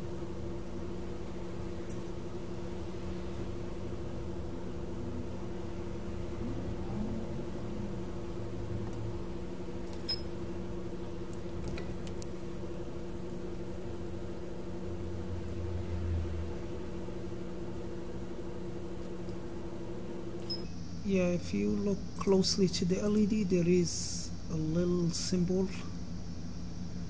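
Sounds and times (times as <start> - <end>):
mechanical hum: 0.0 - 27.0.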